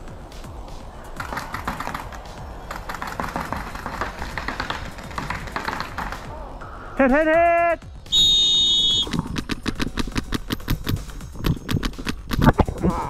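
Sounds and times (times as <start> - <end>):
paintball markers firing: 1.1 - 6.4, 8.2 - 12.9.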